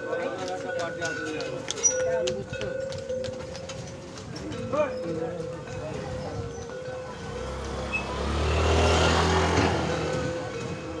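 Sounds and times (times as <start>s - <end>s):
vehicle engine passing by: 7.0s - 11.0s.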